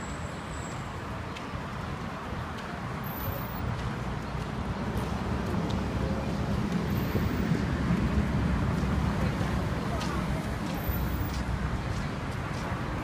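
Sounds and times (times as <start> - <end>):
street traffic rumble: 0.0 - 13.0.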